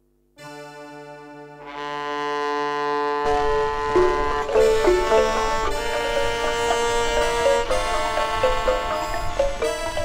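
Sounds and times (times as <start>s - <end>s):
bowed dulcimer sustained note: 0.4s - 10.0s.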